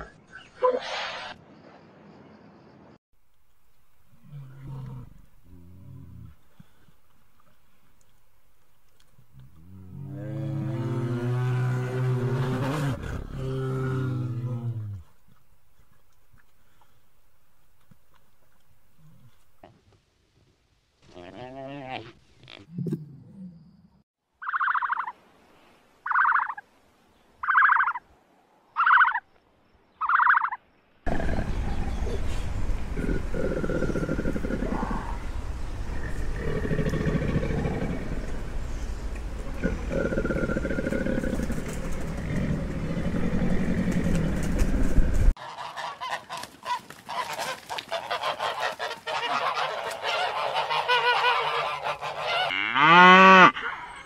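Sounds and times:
geese honking: 45.4s - 52.8s.

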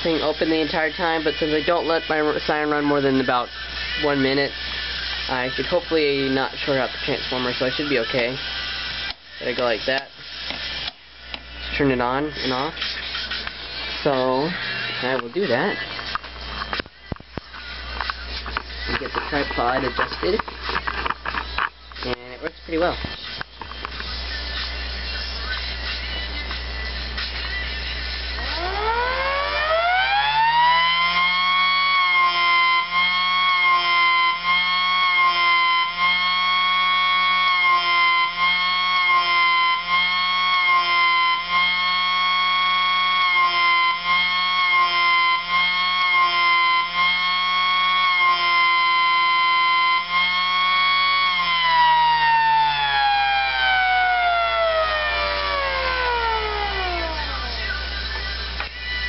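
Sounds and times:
electric siren howling: 28.4s - 58.0s.

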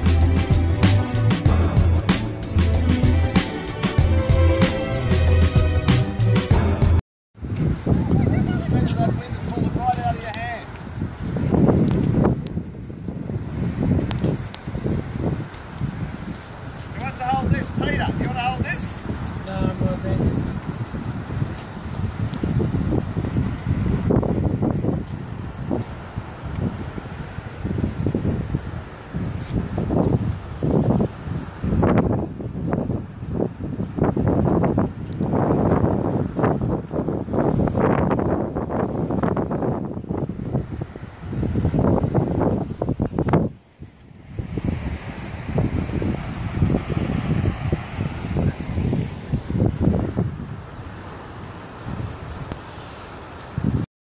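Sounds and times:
wind buffeting microphone: 7.4s - 53.9s.

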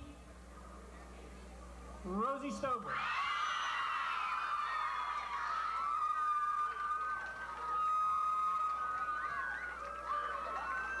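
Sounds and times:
crowd cheering and screaming: 2.9s - 11.0s.

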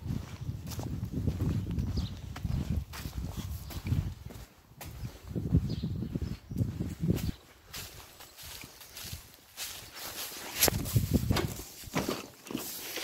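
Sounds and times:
microphone handling rumble: 0.0s - 7.4s, 10.6s - 12.2s
footsteps on dirt and straw: 0.0s - 13.0s.

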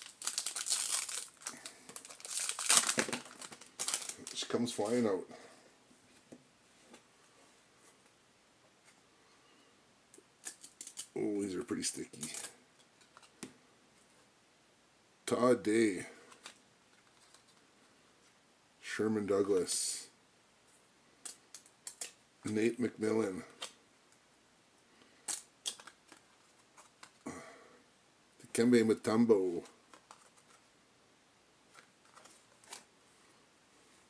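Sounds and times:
cards rustling: 0.0s - 5.1s, 10.4s - 13.4s, 16.2s - 17.7s, 21.2s - 22.6s, 25.2s - 27.2s, 29.4s - 30.7s, 31.7s - 32.9s
cards clicking and snapping: 21.2s - 22.2s, 25.2s - 26.2s.

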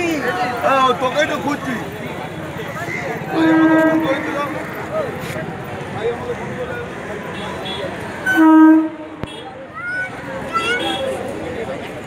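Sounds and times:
train horn blast: 3.3s - 4.6s, 8.2s - 9.2s.

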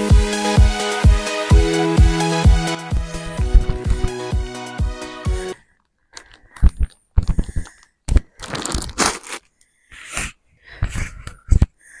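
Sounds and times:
music track: 0.0s - 5.6s
plastic sack rustling and crunching: 8.3s - 9.5s.

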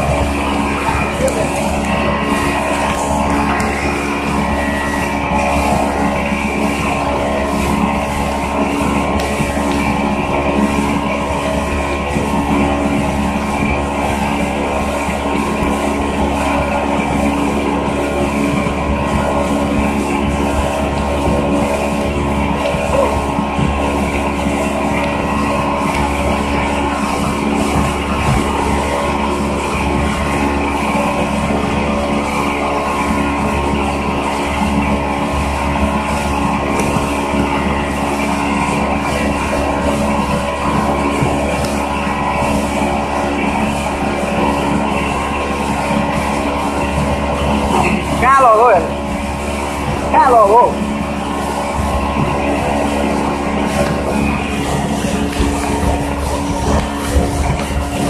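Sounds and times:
motorboat engine running: 0.0s - 58.0s.

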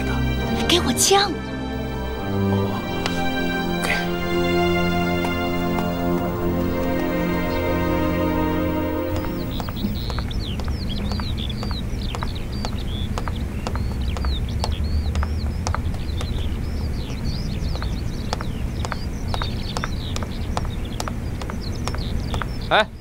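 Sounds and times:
low outdoor hum: 0.0s - 13.9s
birds chirping: 0.0s - 23.0s
footsteps on pavement: 5.0s - 6.8s, 9.1s - 22.7s.

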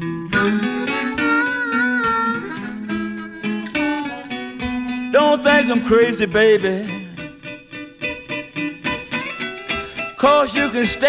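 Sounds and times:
harmonica: 0.0s - 6.2s
guitar accompaniment: 0.0s - 11.0s.

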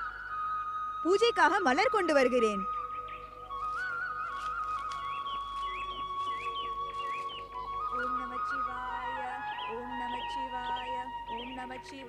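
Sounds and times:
flute-like melody: 0.0s - 12.0s
short chirping calls: 0.0s - 12.0s.

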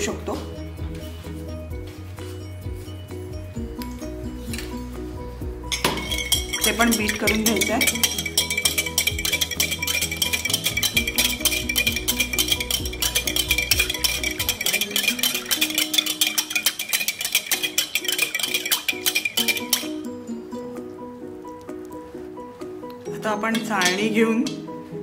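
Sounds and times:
background music: 0.0s - 25.0s
whisk clinking against glass bowl: 5.7s - 20.1s.

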